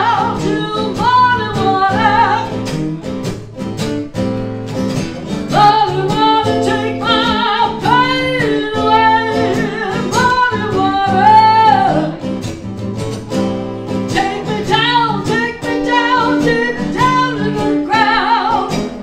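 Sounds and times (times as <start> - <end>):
woman singing: 0.0 - 2.7, 5.5 - 12.6, 13.9 - 19.0
strummed acoustic guitars: 0.0 - 19.0.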